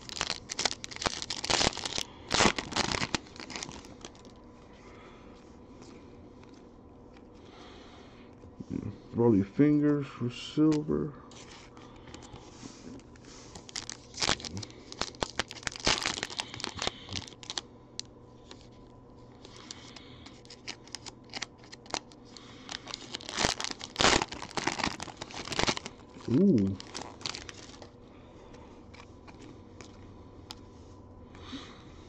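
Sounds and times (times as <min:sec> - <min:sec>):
cards shuffling: 0:00.0 - 0:04.3
foil wrapper tearing and crinkling: 0:00.0 - 0:04.4, 0:13.0 - 0:18.7, 0:19.4 - 0:27.9.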